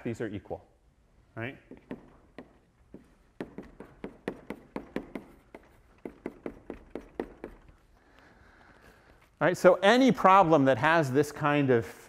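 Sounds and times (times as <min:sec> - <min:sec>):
chalk tapping on blackboard: 0:01.7 - 0:07.9.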